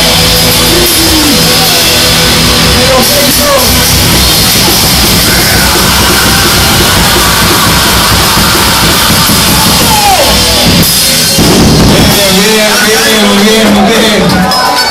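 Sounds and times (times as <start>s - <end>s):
drum kit: 0.0s - 14.8s
heavy rock band playing: 0.0s - 14.9s.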